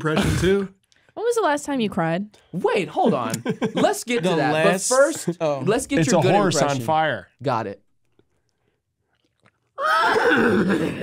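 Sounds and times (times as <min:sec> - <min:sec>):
person imitating horse whinny: 0:09.8 - 0:11.0.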